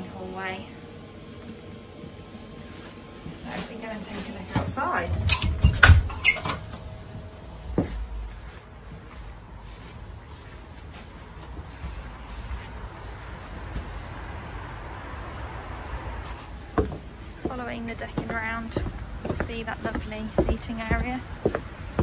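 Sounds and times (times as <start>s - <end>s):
handling and walking noise: 1.2s - 22.0s.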